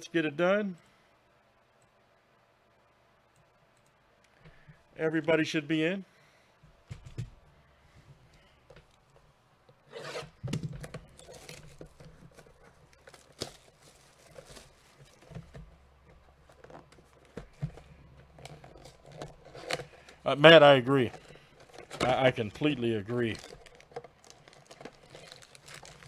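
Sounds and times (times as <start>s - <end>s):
plastic wrap crinkling and tearing: 11.0s - 15.4s, 18.2s - 26.0s.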